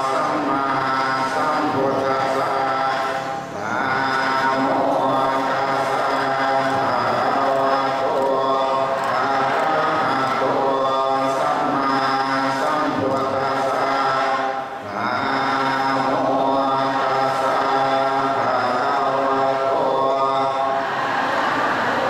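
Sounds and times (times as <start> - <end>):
monk chanting over loudspeaker: 0.0 - 22.0.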